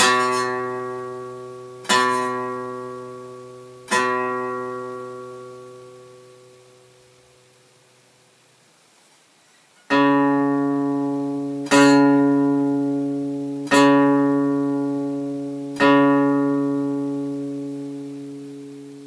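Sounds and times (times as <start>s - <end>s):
guitar note plucked: 0.0s - 7.6s, 9.9s - 19.0s.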